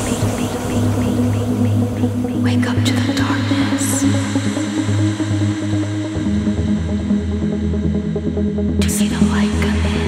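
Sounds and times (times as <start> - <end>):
trance synth music: 0.0 - 8.8.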